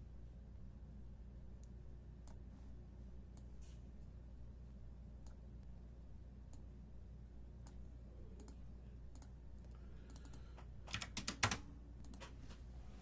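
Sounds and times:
typing on computer keyboard: 10.1 - 12.3.

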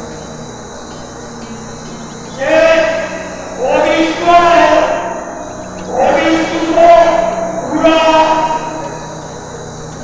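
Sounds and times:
man intoning over loudspeaker: 2.3 - 9.4.

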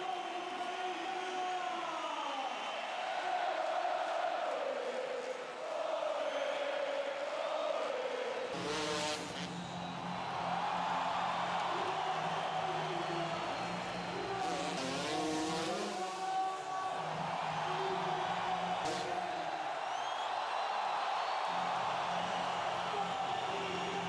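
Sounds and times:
large crowd noise: 0.0 - 24.0
motorbike engine revving: 8.6 - 9.8, 13.4 - 16.1.

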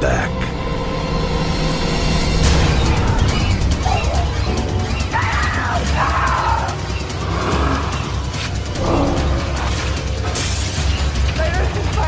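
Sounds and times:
dark music: 0.0 - 12.0.

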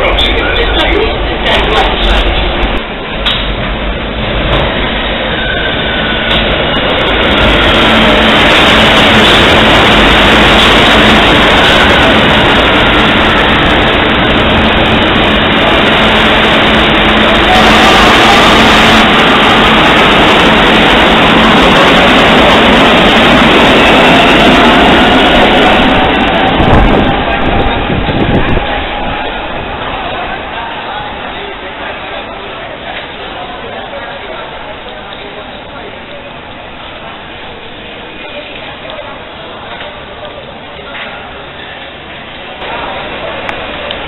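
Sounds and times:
metro train rumbling past: 0.0 - 44.0.

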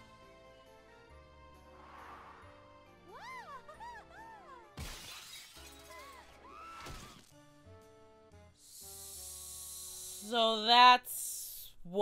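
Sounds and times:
light cartoon music: 0.0 - 11.4
glass shattering crash: 4.8 - 7.4.

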